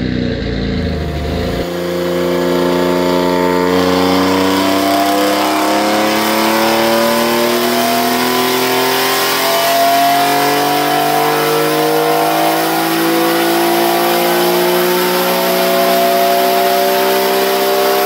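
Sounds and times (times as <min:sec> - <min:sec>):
car engine revving on dyno: 0:00.0 - 0:18.0.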